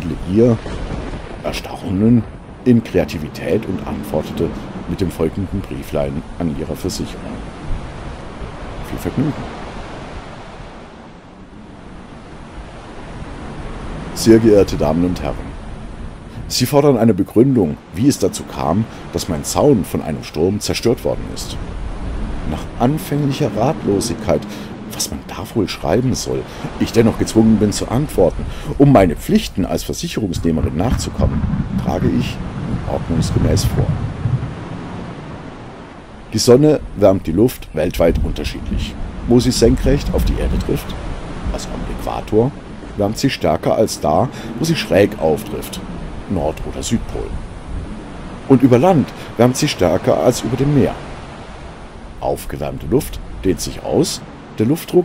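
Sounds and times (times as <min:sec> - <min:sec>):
low storm rumble: 0:00.0 - 0:55.0
soft even rushing noise: 0:01.2 - 0:55.0.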